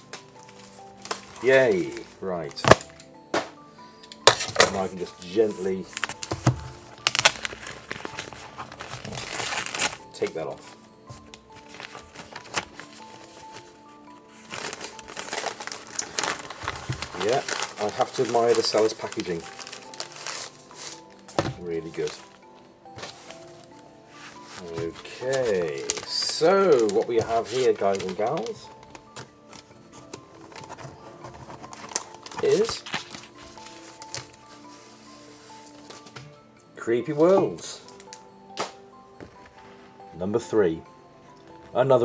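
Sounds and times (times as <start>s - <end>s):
soft background music: 0.0s - 42.0s
packaging wrap crinkling: 4.6s - 36.2s.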